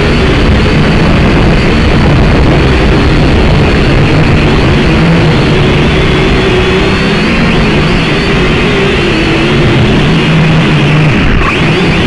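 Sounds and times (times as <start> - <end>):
car engine running: 0.0 - 12.0
loud dense noise: 0.0 - 12.0.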